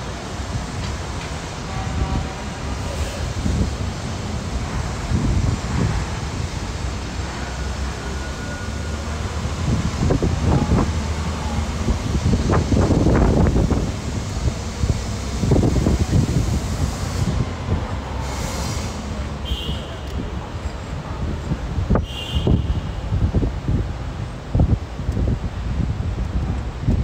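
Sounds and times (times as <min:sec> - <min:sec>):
bus rumbling: 0:00.0 - 0:27.0
city traffic: 0:00.0 - 0:27.0.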